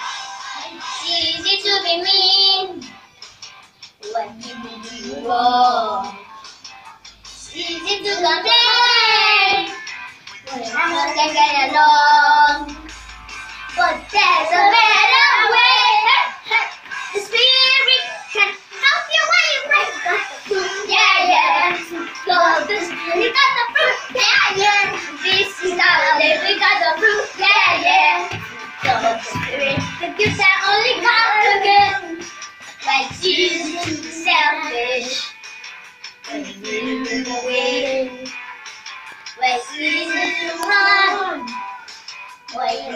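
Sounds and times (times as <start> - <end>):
music: 0.0 - 42.9
children singing: 4.1 - 6.2, 7.6 - 9.8, 10.4 - 12.8, 13.7 - 18.6, 19.2 - 35.3, 36.3 - 38.4, 39.4 - 41.6.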